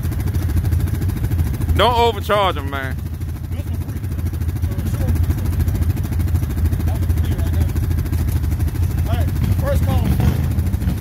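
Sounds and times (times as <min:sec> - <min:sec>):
atv engine idling: 0:00.0 - 0:11.0.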